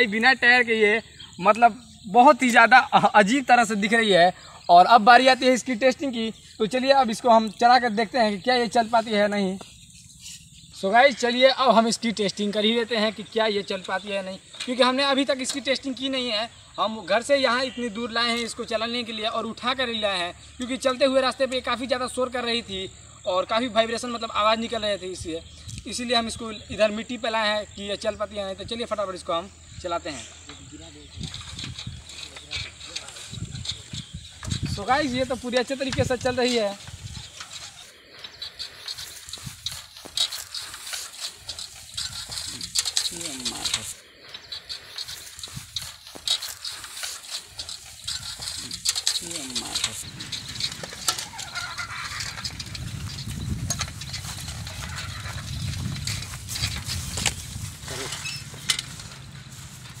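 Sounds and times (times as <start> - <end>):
bicycle rims knocking and rattling: 4.9 - 22.6, 30.3 - 60.0.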